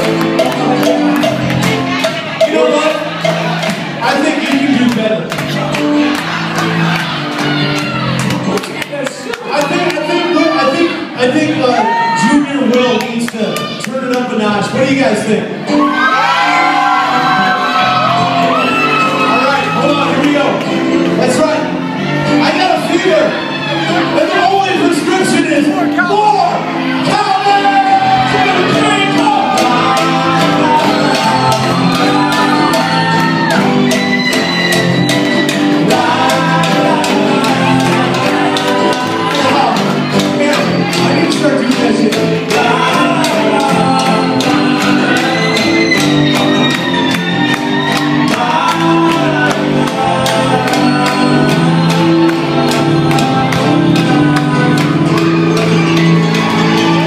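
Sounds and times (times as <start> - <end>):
piano-bar music with singing: 0.0 - 57.0
people shouting along: 5.6 - 8.3, 11.6 - 12.5, 15.8 - 20.3, 21.8 - 24.6, 25.9 - 41.2, 42.5 - 57.0.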